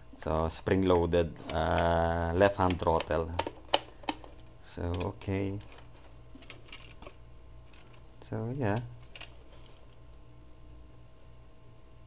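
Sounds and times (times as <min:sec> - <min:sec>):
low room hum: 0:00.0 - 0:12.0
plastic handling: 0:01.8 - 0:10.1.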